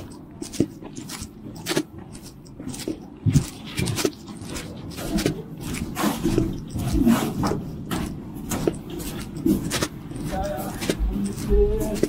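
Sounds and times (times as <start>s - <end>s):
footsteps crunching on snowy sidewalk: 0.0s - 12.0s.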